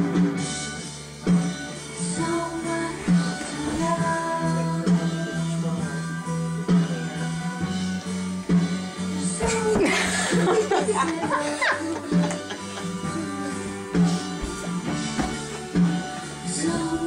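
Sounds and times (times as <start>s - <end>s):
guitar with drums: 0.0s - 17.0s.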